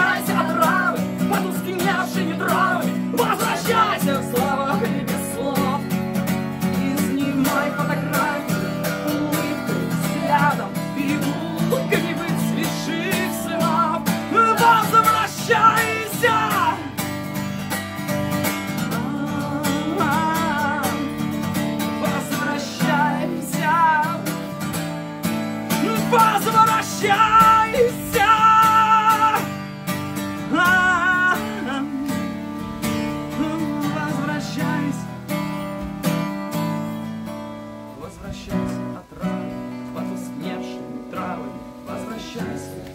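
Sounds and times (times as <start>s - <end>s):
man singing: 0.0s - 35.6s, 37.8s - 42.9s
acoustic guitar strumming: 0.0s - 42.9s.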